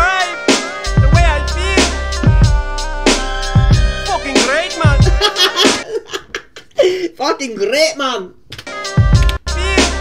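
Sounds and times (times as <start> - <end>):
music with heavy bass: 0.0 - 5.8, 8.9 - 10.0
man laughing hard: 4.9 - 7.2.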